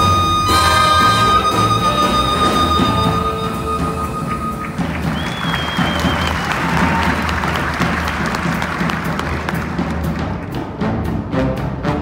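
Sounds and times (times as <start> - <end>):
high whistle: 0.0 - 6.6
big band playing: 0.0 - 12.0
audience applauding: 3.4 - 10.4.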